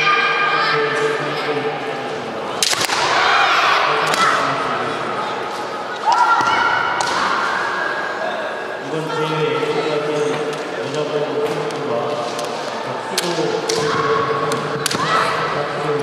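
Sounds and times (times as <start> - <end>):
people shouting: 2.9 - 4.6, 6.0 - 8.6, 13.6 - 15.7.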